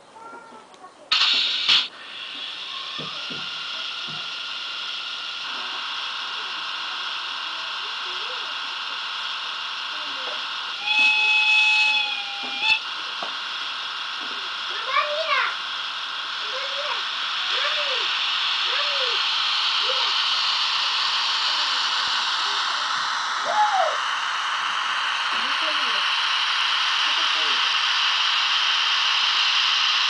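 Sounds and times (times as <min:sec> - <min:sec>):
model train motor hiss: 0:01.1 - 0:23.8, 0:24.9 - 0:30.0
model locomotive whistle: 0:10.6 - 0:12.9
short train hoot: 0:10.8 - 0:12.8.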